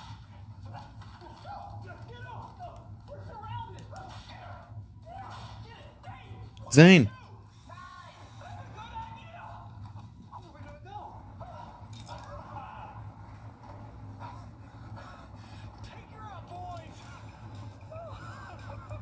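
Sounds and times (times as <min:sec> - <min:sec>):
faint voices talking: 0:06.6 - 0:07.2.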